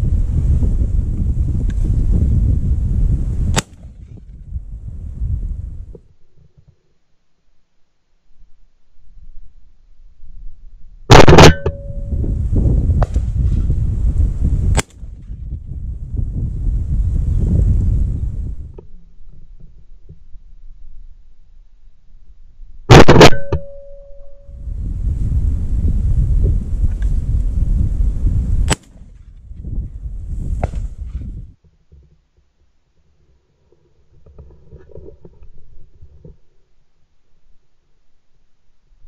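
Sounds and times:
low rumbling noise: 0.0 - 6.2, 9.0 - 31.6
shotgun shots: 3.5 - 3.9, 11.1 - 12.0, 14.8 - 15.1, 22.9 - 23.7, 28.7 - 29.1.

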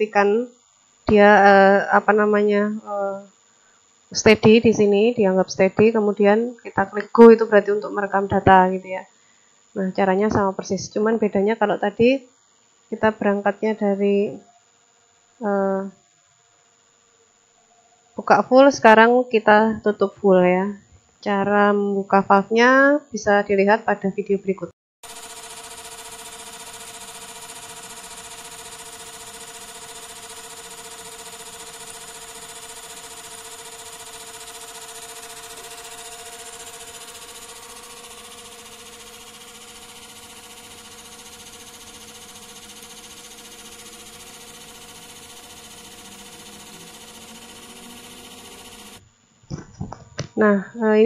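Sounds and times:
gear pump motor humming and whining: 12.6 - 18.0, 25.0 - 49.9.

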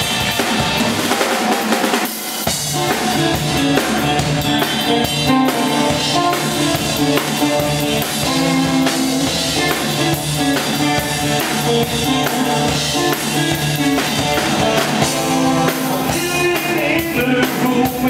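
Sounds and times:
bass guitar: 0.0 - 1.2, 2.4 - 18.0
drums and cymbals: 0.0 - 18.0
rock band playing live: 0.0 - 18.0.

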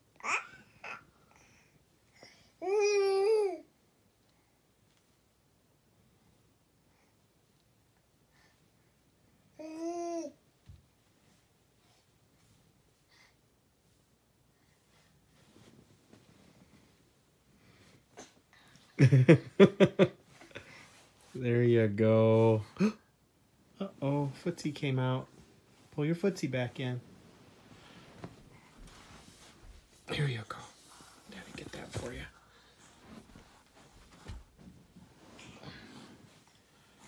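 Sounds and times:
faint soft rustling: 1.5 - 19.0, 20.1 - 37.0.

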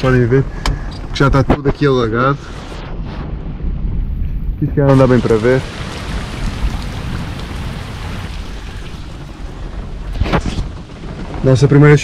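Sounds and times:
heavy rain on puddles: 4.8 - 12.0.

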